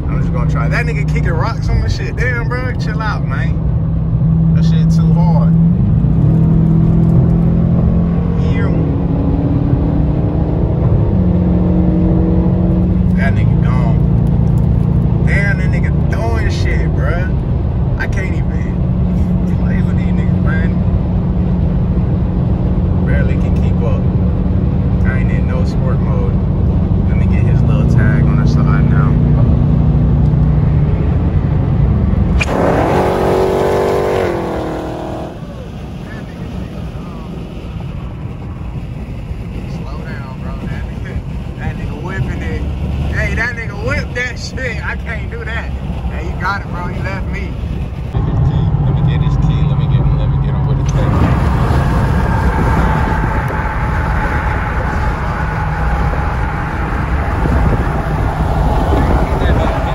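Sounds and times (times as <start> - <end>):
car engine accelerating: 0.0 - 59.9
road noise inside car: 0.0 - 59.9.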